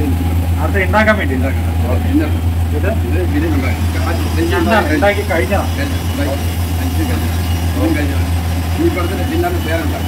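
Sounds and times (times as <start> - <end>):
indistinct voices talking: 0.0 - 10.0
kitchen machinery hum: 0.0 - 10.0.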